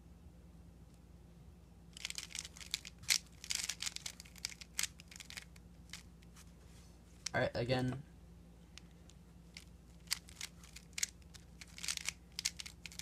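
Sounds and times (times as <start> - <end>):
puzzle cube layers clicking: 2.0 - 6.0, 9.6 - 13.0.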